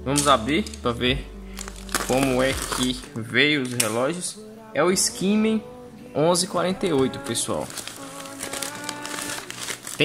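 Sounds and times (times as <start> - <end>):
background music with held notes: 0.0 - 10.0
plastic packaging crinkling: 1.5 - 4.1, 6.8 - 10.0.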